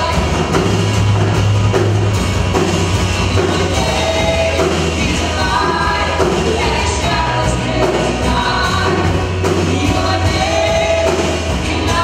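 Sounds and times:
guitars: 0.0 - 12.0
steady bass: 0.0 - 12.0.

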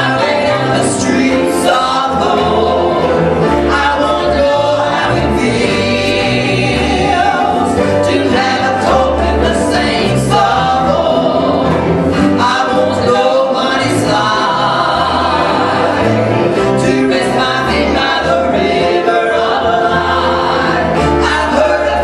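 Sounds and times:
bass line: 0.0 - 22.0
gospel trio singing: 0.0 - 22.0
guitar: 0.0 - 22.0
piano: 0.0 - 22.0.

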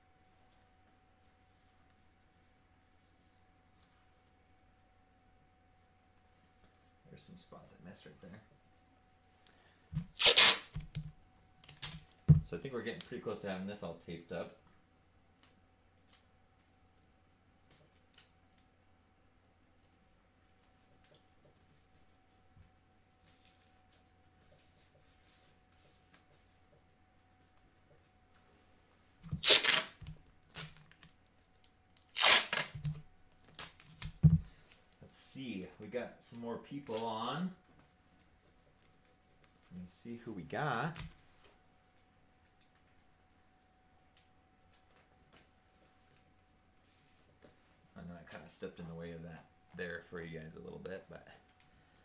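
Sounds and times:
tape ripping off roll: 10.0 - 12.4, 29.2 - 31.2, 31.9 - 34.4
tape crackling: 10.0 - 13.6, 29.2 - 35.7.

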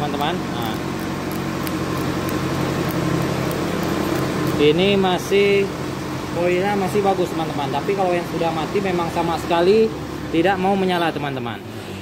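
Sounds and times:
machine humming: 0.0 - 10.8.

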